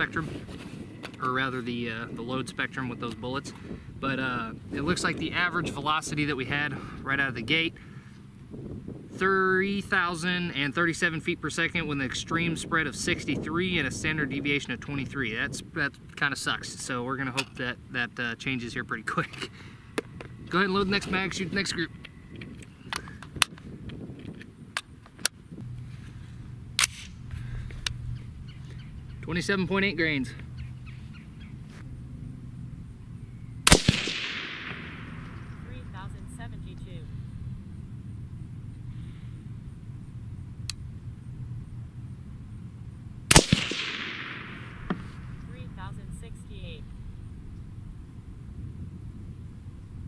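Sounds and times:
low steady hum: 0:24.6 - 0:50.0
metallic rifle clicks: 0:26.8 - 0:27.2, 0:33.7 - 0:35.1, 0:43.3 - 0:45.0.

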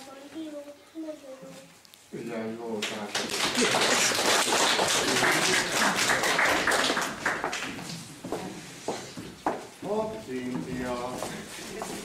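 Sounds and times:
audience applauding: 0:02.8 - 0:07.9.

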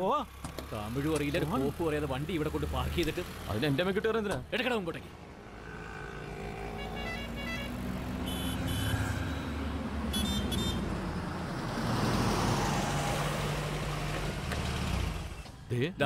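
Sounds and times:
motorcycle engines passing by: 0:05.0 - 0:15.4
short high horn beeps: 0:06.8 - 0:10.8.

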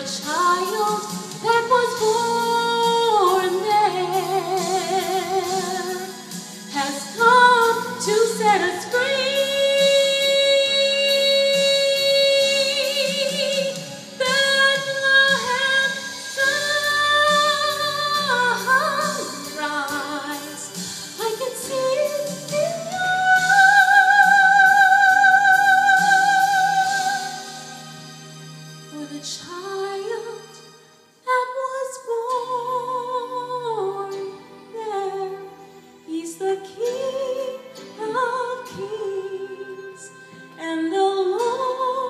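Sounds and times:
soft instrumental backing: 0:00.0 - 0:42.0.

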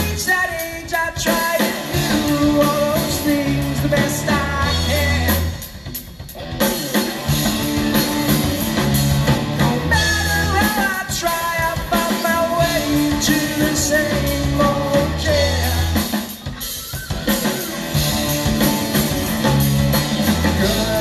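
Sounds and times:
live rock band playing: 0:00.0 - 0:21.0.

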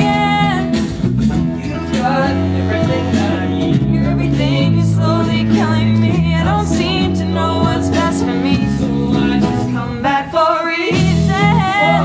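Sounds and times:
person singing: 0:00.0 - 0:12.0
pop-rock band playing: 0:00.0 - 0:12.0.

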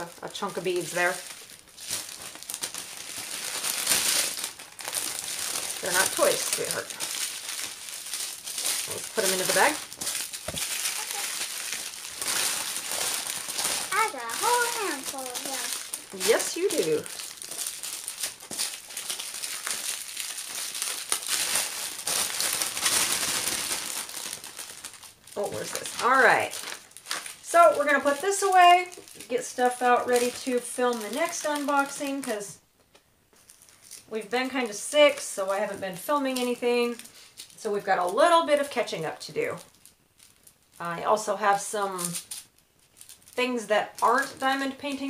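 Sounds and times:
plastic bags crinkling: 0:00.0 - 0:32.5, 0:33.4 - 0:45.0.

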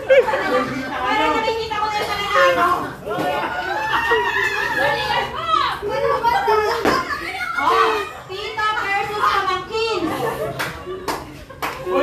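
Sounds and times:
people chattering excitedly: 0:00.0 - 0:12.0.

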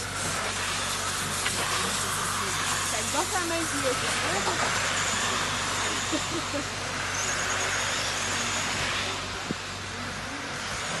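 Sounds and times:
remote control cars hissing: 0:00.0 - 0:11.0.

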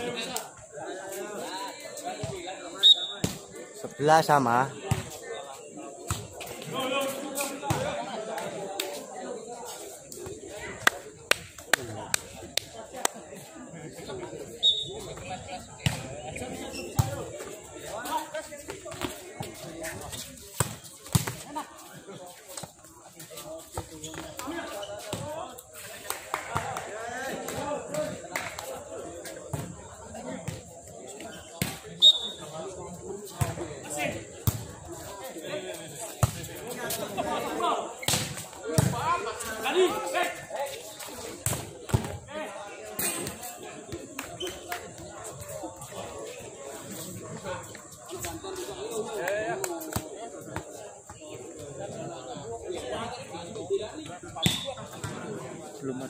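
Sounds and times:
spectators chattering: 0:00.0 - 0:56.0
ball hitting concrete: 0:17.0 - 0:17.2, 0:38.0 - 0:39.1.

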